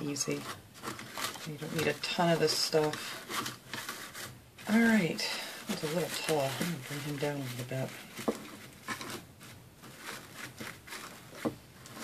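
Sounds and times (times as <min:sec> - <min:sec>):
artificial pine greenery rustling: 0:00.0 - 0:12.0.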